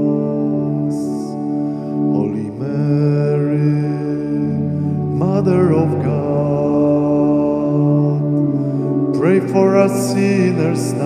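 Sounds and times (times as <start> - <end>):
organ chord: 0.0 - 11.0
person singing: 0.0 - 11.0.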